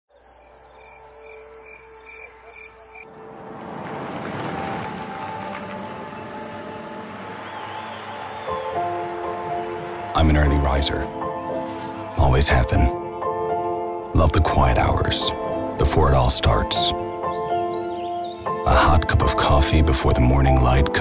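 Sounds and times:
insects chirping: 0:00.1 - 0:09.4
wash of noise: 0:03.1 - 0:09.8
soft sustained music notes: 0:03.1 - 0:21.0.

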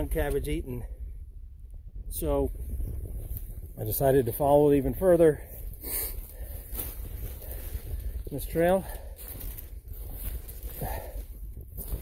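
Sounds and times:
wind on microphone: 0:00.0 - 0:12.0
faint crunches: 0:05.4 - 0:12.0
footsteps through undergrowth: 0:05.4 - 0:12.0.

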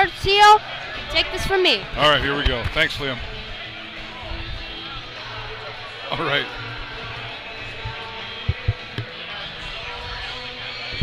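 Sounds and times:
guitar background music: 0:00.0 - 0:11.0
short thumps: 0:07.9 - 0:09.1.

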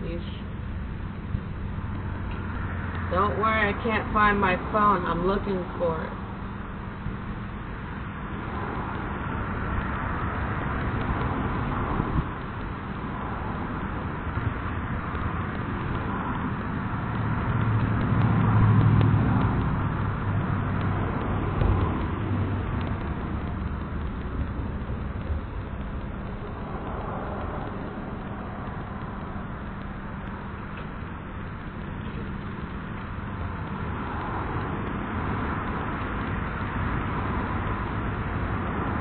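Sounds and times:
vehicle engine rumble passing: 0:00.0 - 0:39.0.

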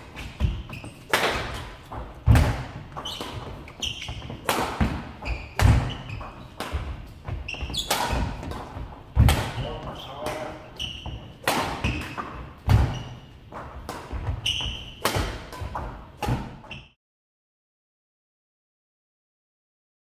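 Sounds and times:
racket hitting shuttlecock: 0:00.0 - 0:16.9
shoes squeaking: 0:00.0 - 0:17.0.

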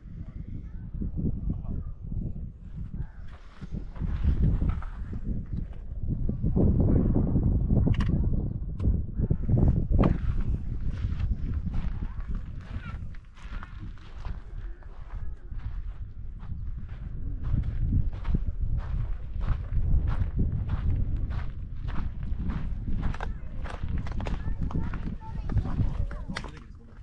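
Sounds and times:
faint voices: 0:00.0 - 0:27.0
wind buffeting microphone: 0:00.0 - 0:27.0
footsteps on gravel: 0:10.1 - 0:26.3.

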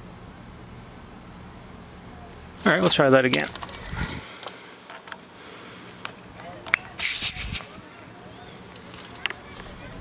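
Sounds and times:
air hissing: 0:07.0 - 0:07.8.

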